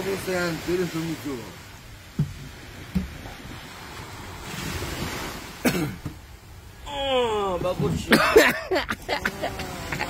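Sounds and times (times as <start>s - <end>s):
small waves washing on sand: 0.0s - 10.0s.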